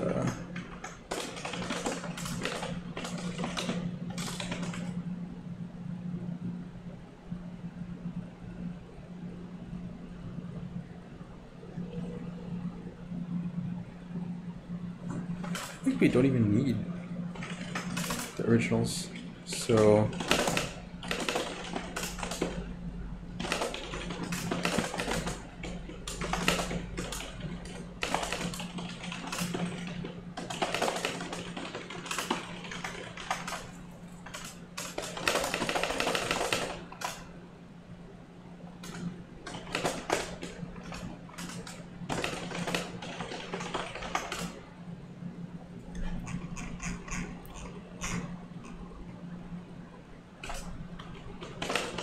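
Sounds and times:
computer keyboard typing: 0.0 - 5.0, 17.4 - 18.5, 19.5 - 22.7, 23.4 - 37.2, 38.8 - 44.6, 50.4 - 52.0
steady low hum: 0.0 - 52.0.

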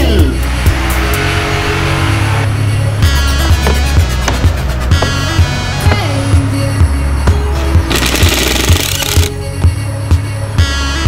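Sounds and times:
background music with steady beat: 0.0 - 11.0
cordless power drill running: 7.9 - 9.3.

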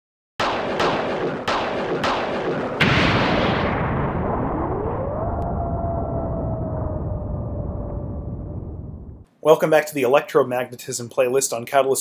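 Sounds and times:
electric zap crackling: 1.7 - 5.4.

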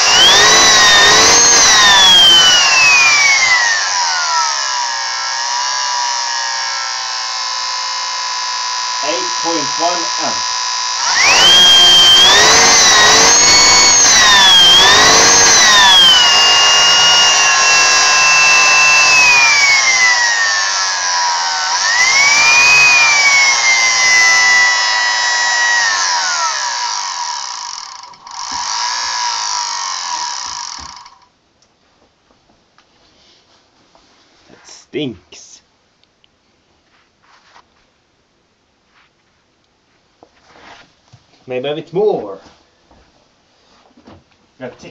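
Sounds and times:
motor whining at high speed: 0.0 - 31.2.

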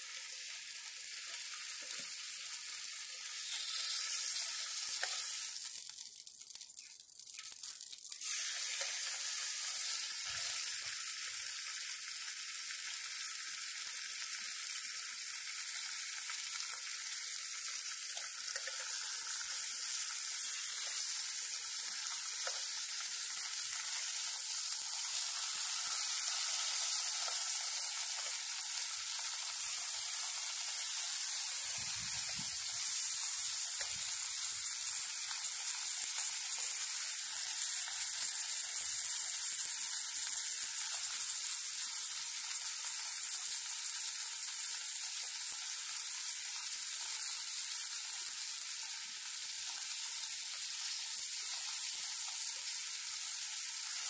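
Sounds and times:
bacon sizzling in a tin: 0.0 - 54.0.

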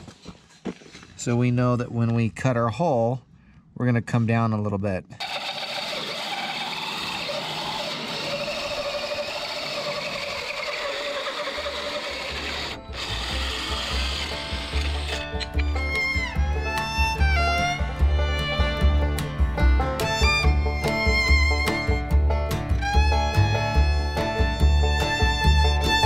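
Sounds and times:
drill cutting through plywood: 5.2 - 15.7
fiddle-like tones: 7.8 - 26.0
bluegrass music: 11.5 - 26.0
bass beat: 13.0 - 26.0.

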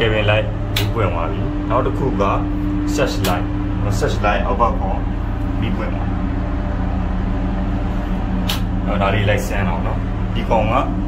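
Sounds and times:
diesel engine running: 0.0 - 11.0
sharp click: 0.7 - 1.0, 3.2 - 3.4, 8.4 - 8.8.

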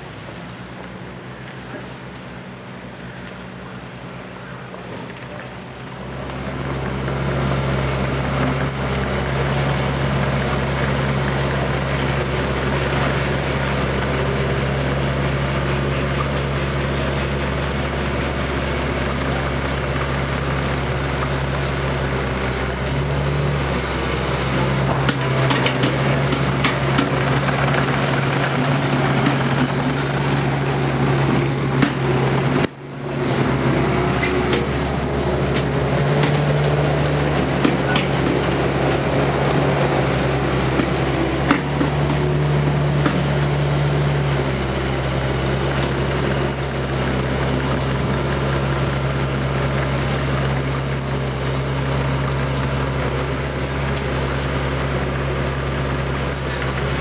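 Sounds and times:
heavy machinery engine running: 0.0 - 57.0.

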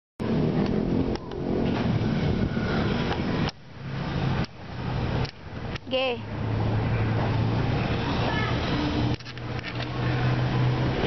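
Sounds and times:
vehicle engines on road: 0.2 - 11.0.

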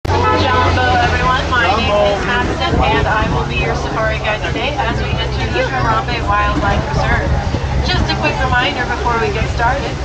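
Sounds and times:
truck engine humming: 0.0 - 10.0.

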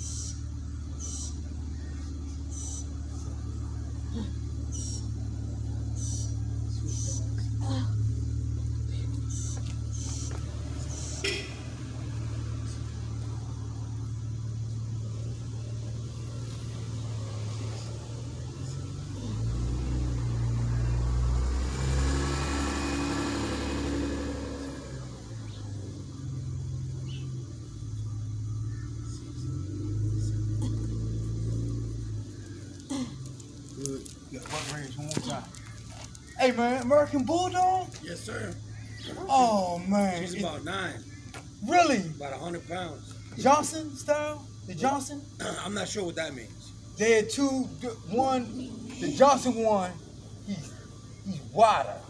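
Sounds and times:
steady low hum: 0.0 - 52.0
vehicle passing: 0.0 - 52.0.

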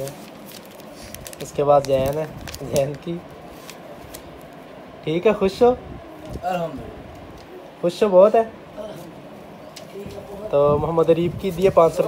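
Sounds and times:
paper banknotes rustling: 0.0 - 4.5.

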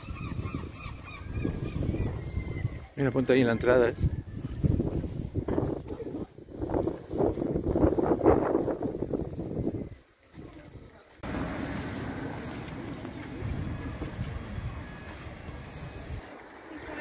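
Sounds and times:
wind on microphone: 0.0 - 3.0, 3.6 - 10.9
steady outdoor hiss: 11.2 - 17.0.

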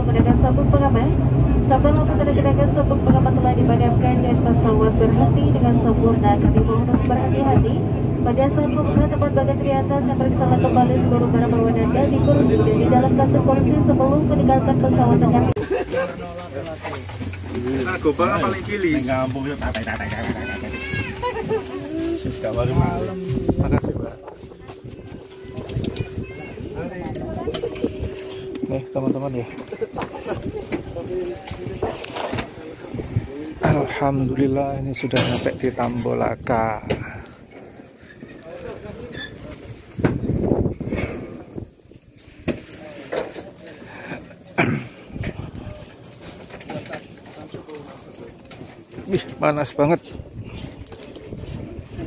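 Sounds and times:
steady low hum: 0.0 - 39.0
indistinct voices talking: 0.0 - 40.8.

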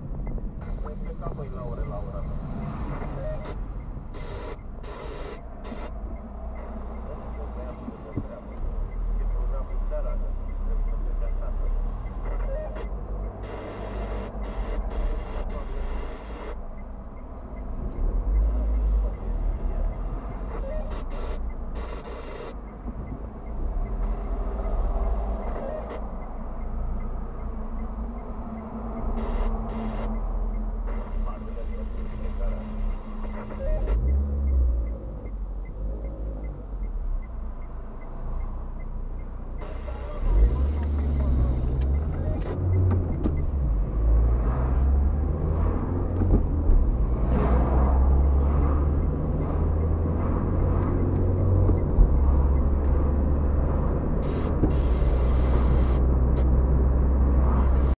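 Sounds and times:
engine and tyre rumble driving: 0.0 - 57.9.

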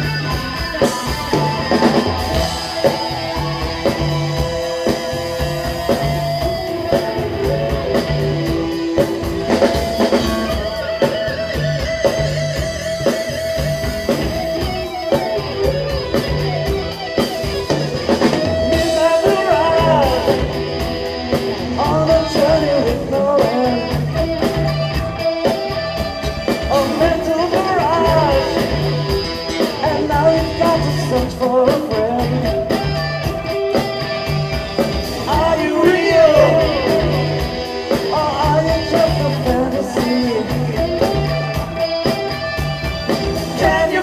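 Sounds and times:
bass guitar: 0.0 - 44.0
drum kit: 0.0 - 44.0
electric guitar: 0.0 - 44.0
keyboards: 0.0 - 44.0.

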